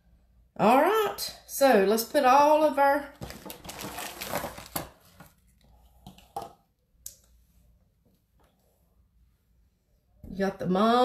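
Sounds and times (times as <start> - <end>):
rustling of craft materials: 3.1 - 6.6.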